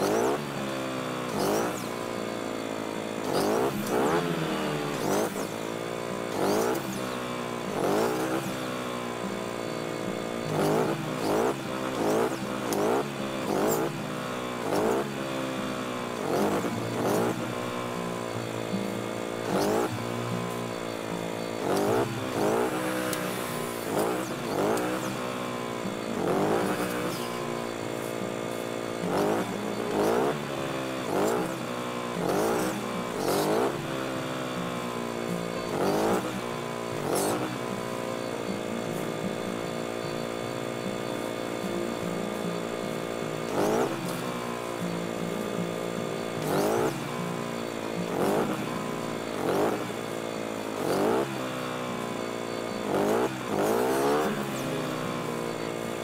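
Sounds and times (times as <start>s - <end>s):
chainsaw engine revving: 0.0s - 56.0s.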